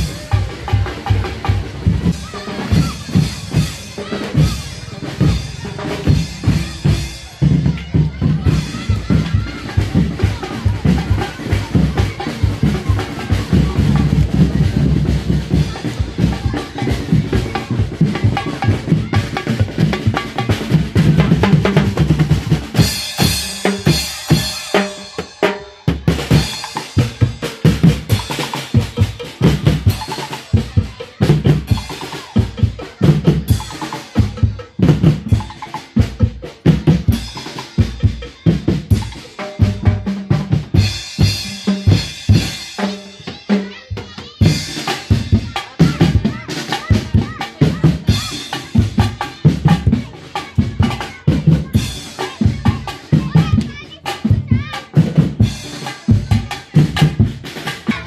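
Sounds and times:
percussion band drumming: 0:00.0 - 0:58.0.

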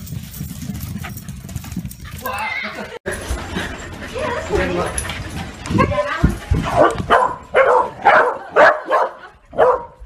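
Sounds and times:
dog paws thudding on floor: 0:04.5 - 0:07.2.

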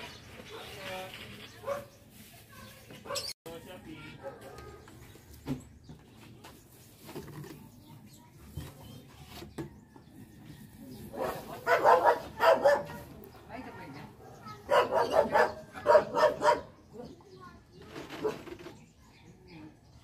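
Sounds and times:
dog barking: 0:01.6 - 0:01.9, 0:03.0 - 0:03.3, 0:04.2 - 0:04.9, 0:11.1 - 0:13.1, 0:14.2 - 0:17.1.

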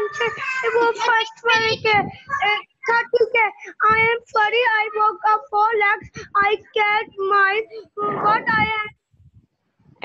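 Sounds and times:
child reading aloud: 0:00.0 - 0:09.0.

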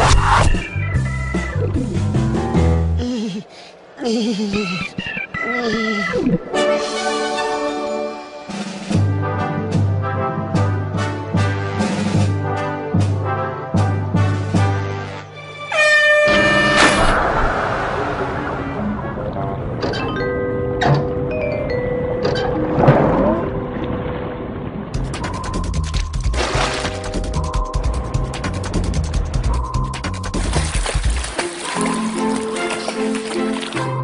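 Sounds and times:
brass-led orchestral cartoon music: 0:06.4 - 0:17.1, 0:31.6 - 0:34.0.

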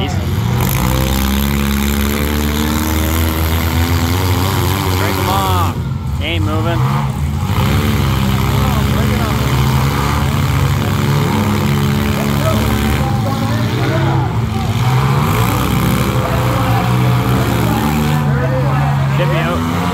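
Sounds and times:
car engines revving: 0:00.0 - 0:19.9.

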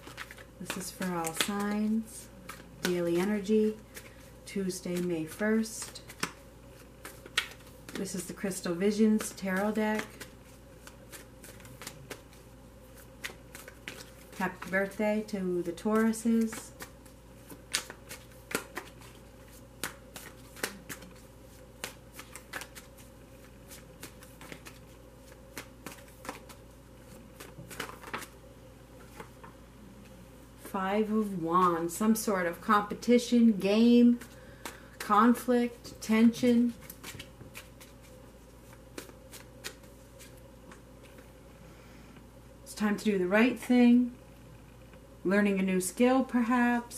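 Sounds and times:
cards being shuffled: 0:00.0 - 0:15.0, 0:15.6 - 0:28.4, 0:29.0 - 0:29.5, 0:34.0 - 0:35.8, 0:36.6 - 0:41.3.

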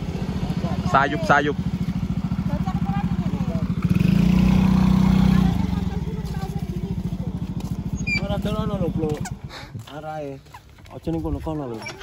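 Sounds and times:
small motorcycle engine idling and revving: 0:00.0 - 0:12.0.

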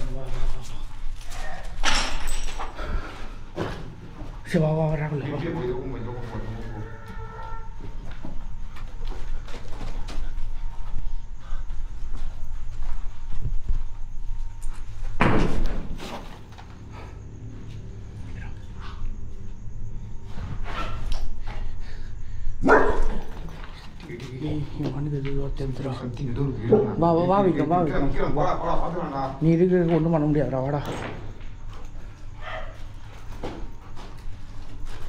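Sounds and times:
dog barking: 0:22.6 - 0:23.4, 0:32.4 - 0:32.8.

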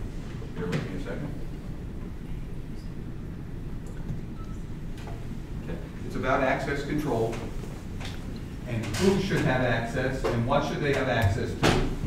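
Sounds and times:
low room rumble: 0:00.0 - 0:12.0.

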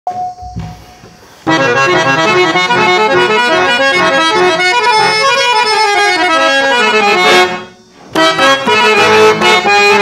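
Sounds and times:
harmonium melody: 0:01.1 - 0:10.0.

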